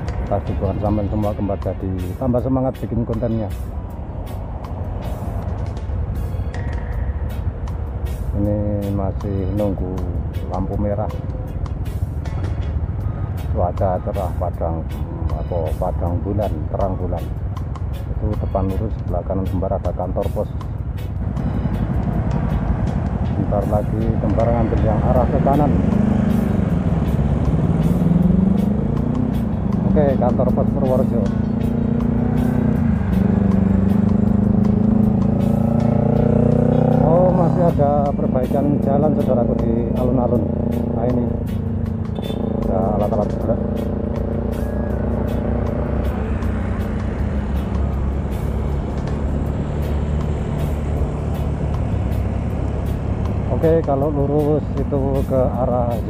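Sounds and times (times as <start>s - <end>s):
background music with singing: 0.0s - 56.0s
road and wind noise: 0.0s - 56.0s
motorcycle engine accelerating: 21.1s - 56.0s.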